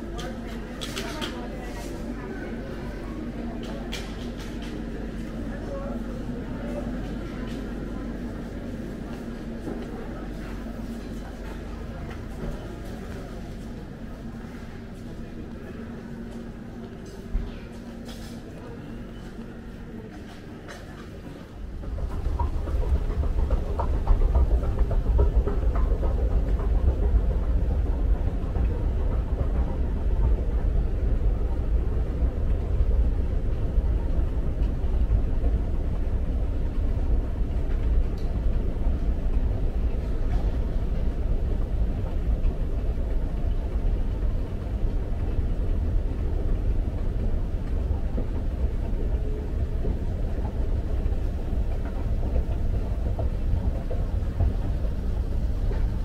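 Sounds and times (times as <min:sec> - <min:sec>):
escalator rumble: 0:19.7 - 0:56.0.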